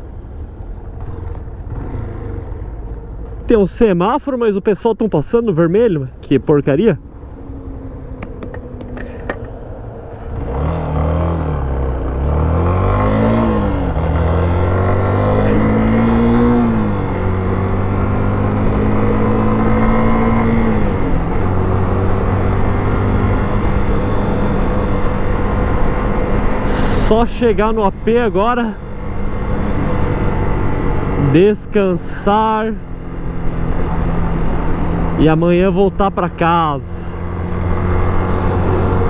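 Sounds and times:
motorcycle engine accelerating: 0.6s - 3.5s, 6.9s - 39.0s.

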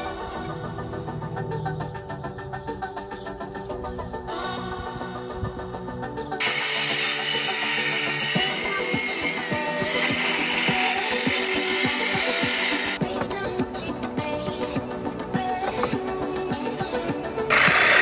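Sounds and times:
background music: 0.0s - 18.0s
circular saw cutting wood: 6.4s - 13.0s, 17.5s - 18.0s.

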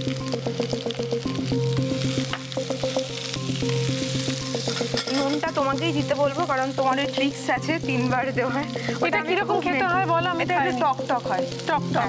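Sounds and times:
background music: 0.0s - 12.0s
food sizzling in oil: 0.0s - 12.0s.

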